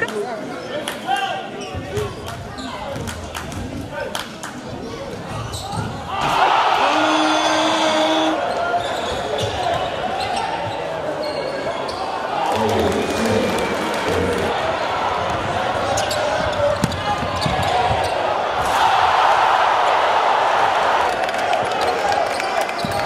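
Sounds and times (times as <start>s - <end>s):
crowd murmur: 9.5s - 22.9s.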